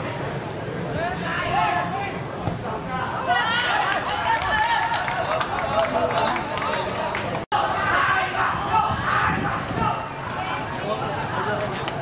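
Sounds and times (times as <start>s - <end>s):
people shouting and talking: 0.0s - 12.0s.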